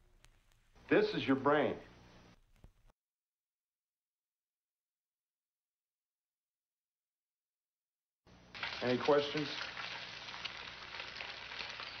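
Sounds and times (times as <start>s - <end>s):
egg sizzling in a pan: 8.4s - 12.0s.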